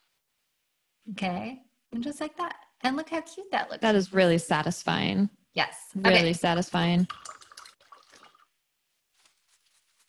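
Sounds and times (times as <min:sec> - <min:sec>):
paint brush wiped on paper towel: 0:08.9 - 0:10.0.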